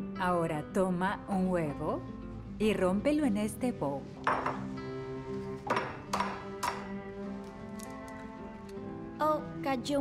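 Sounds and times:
film music with held notes: 0.0s - 10.0s.

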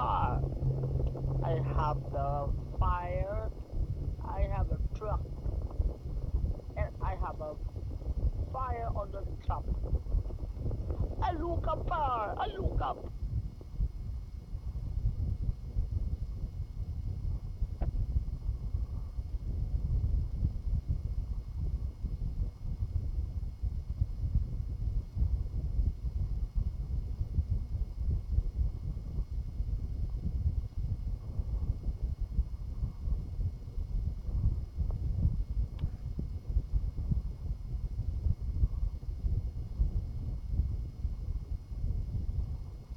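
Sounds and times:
faint high whine: 0.0s - 42.9s
low rumbling on microphone: 0.0s - 42.9s.

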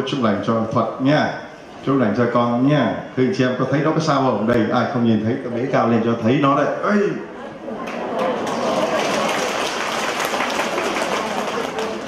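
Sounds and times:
crowd applauding: 7.8s - 12.0s.

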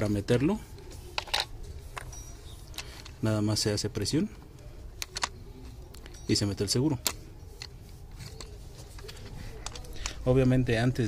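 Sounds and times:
faint handling ticks: 0.0s - 10.6s.

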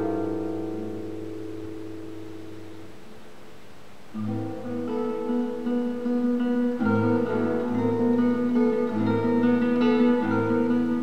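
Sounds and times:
classical guitar chord ringing: 0.0s - 11.0s.

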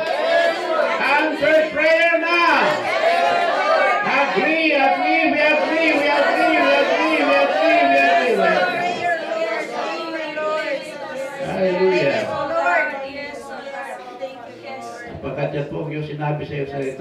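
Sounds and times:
voices praying aloud: 0.0s - 17.0s
man speaking into a microphone: 1.0s - 2.8s, 4.0s - 8.8s, 11.4s - 12.4s, 15.1s - 17.0s.

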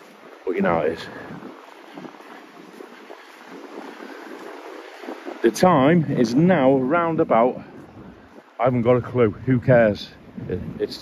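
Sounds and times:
distant surf: 0.0s - 11.0s
wind: 0.0s - 11.0s.

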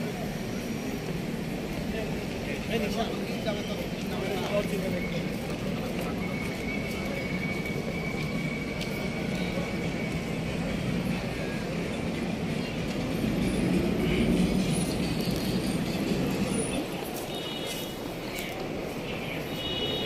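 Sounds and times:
street traffic rumble: 0.0s - 20.0s.

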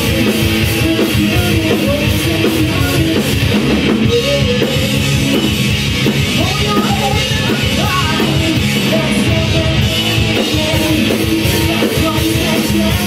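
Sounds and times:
rock band playing: 0.0s - 13.0s.

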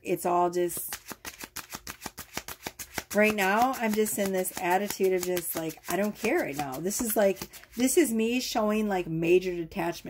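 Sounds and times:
cards being shuffled: 0.7s - 8.0s.

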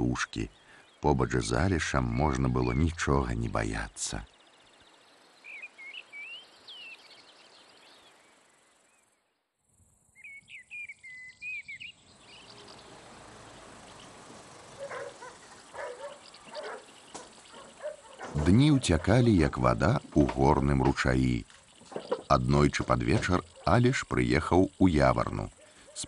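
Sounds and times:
songbirds chirping: 0.0s - 26.0s
lower bird calls: 4.1s - 9.3s, 10.0s - 26.0s
steady hiss: 12.0s - 26.0s.

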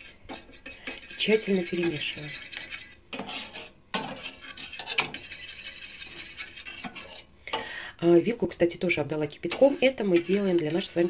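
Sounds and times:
metal fork scraping saucepan: 0.0s - 7.3s, 9.4s - 11.0s.

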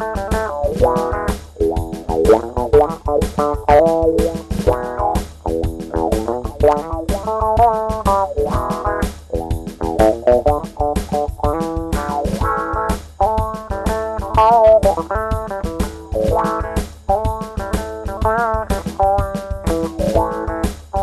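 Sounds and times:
guitar plucked notes: 0.0s - 21.0s
steady bass line: 0.0s - 21.0s.

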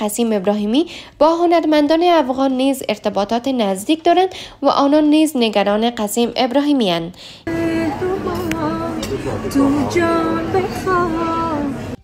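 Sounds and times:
low background noise: 0.0s - 12.0s
woman singing long notes: 7.5s - 12.0s.

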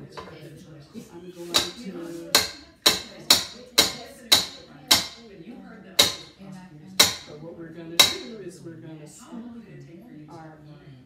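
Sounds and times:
whisk knocking on metal bowl: 1.4s - 5.2s, 6.0s - 6.3s, 7.0s - 7.4s, 8.0s - 8.3s.

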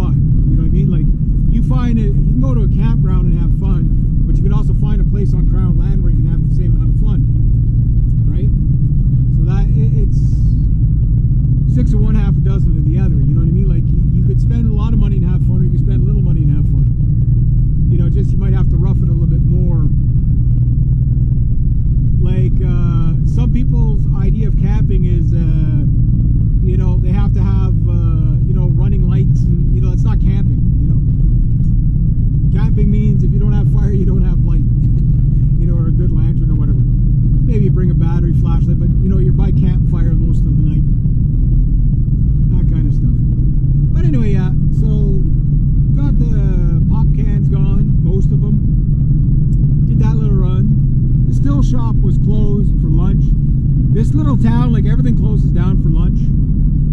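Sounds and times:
person talking: 0.0s - 7.2s, 9.4s - 10.6s, 11.7s - 16.8s, 17.9s - 20.0s, 22.2s - 25.9s, 26.6s - 31.2s, 32.6s - 34.8s, 35.5s - 36.8s, 37.4s - 40.9s, 42.5s - 43.2s, 43.9s - 45.3s, 46.0s - 48.6s, 49.9s - 53.3s, 54.0s - 56.3s
car engine and tyres rumbling: 0.0s - 56.9s.

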